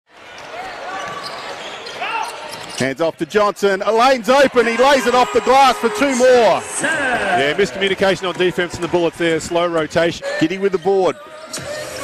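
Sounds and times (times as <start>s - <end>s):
sneaker squeaks: 0.4s - 2.9s.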